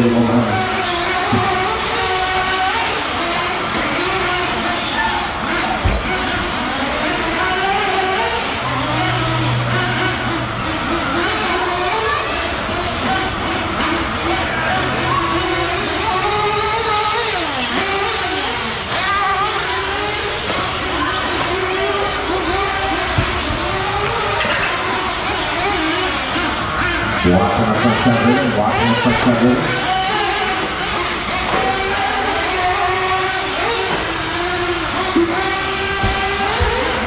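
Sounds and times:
rc car engines buzzing and revving: 0.0s - 37.0s.

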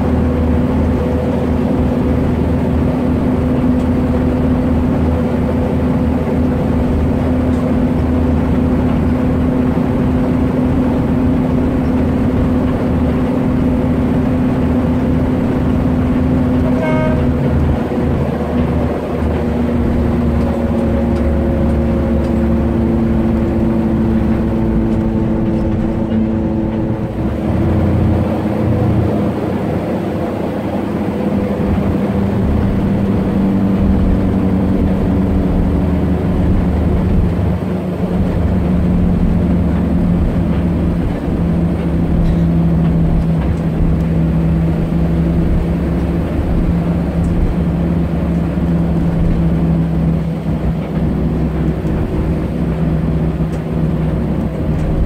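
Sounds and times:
bus engine drone: 0.0s - 55.0s
low road rumble: 0.0s - 55.0s.

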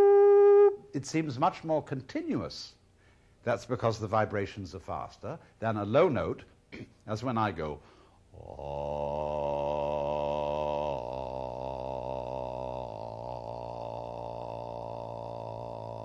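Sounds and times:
man singing low note: 8.4s - 16.0s.

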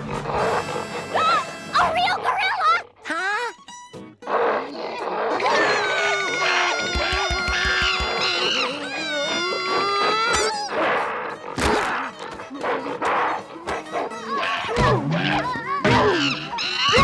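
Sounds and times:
music: 0.0s - 17.0s
cartoon characters screaming: 1.1s - 3.5s, 5.3s - 10.8s, 14.3s - 17.0s
gorilla roars: 4.3s - 12.3s.

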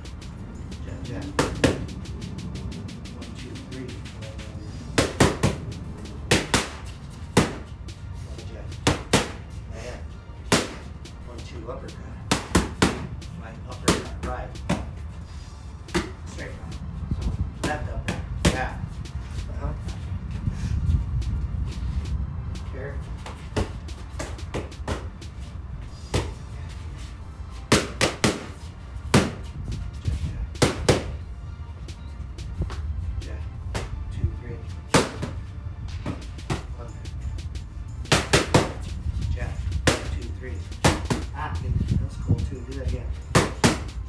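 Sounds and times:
punches smacking focus mitts: 10.5s - 10.9s.

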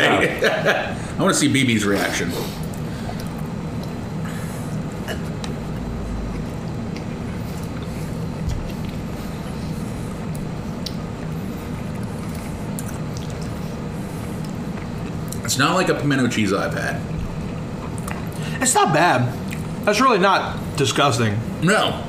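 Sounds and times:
low room hum: 0.0s - 22.0s
chewing and mouth clicks: 5.4s - 15.5s, 17.1s - 18.4s, 19.4s - 19.8s.

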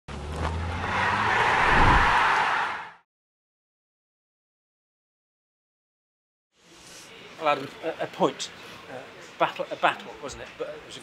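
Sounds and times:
rushing whoosh: 0.7s - 2.9s
low hum: 1.6s - 2.2s.

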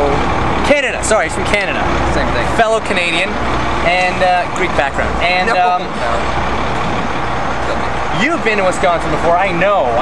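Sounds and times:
large engine running: 0.0s - 10.0s.

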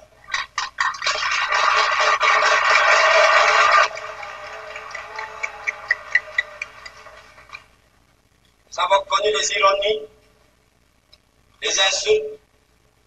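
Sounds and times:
crowd applause: 0.3s - 7.8s.

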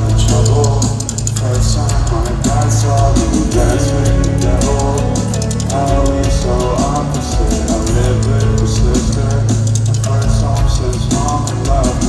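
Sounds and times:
drum hits: 0.0s - 12.0s
live rock band playing: 0.0s - 12.0s.

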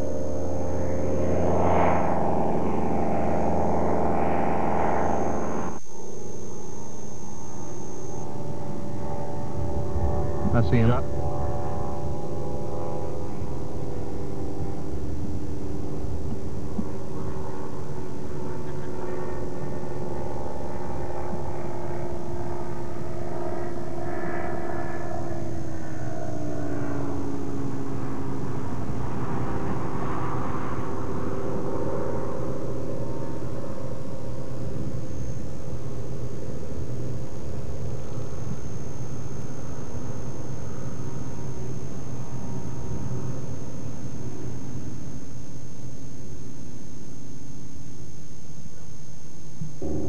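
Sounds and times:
light aircraft engine droning: 0.0s - 50.0s.

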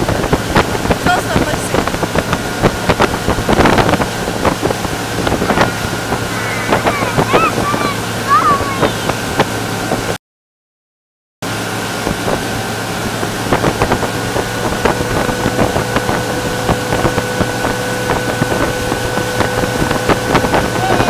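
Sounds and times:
motorboat engine running: 0.0s - 10.2s, 11.4s - 21.0s
water churning in wake: 0.0s - 10.2s, 11.4s - 21.0s
wind buffeting microphone: 0.0s - 10.2s, 11.8s - 21.0s.

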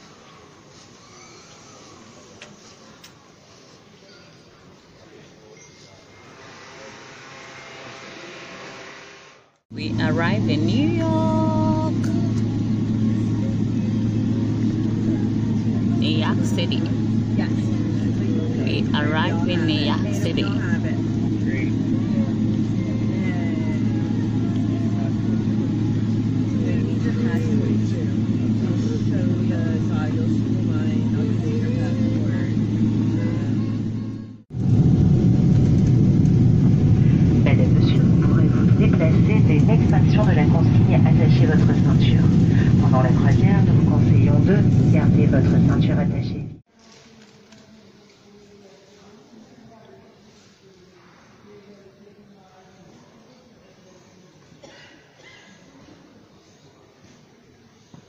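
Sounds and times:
faint voices: 0.0s - 8.6s, 9.7s - 34.4s
deep cabin rumble: 9.7s - 46.6s
jet engine cabin hum: 9.7s - 46.7s.

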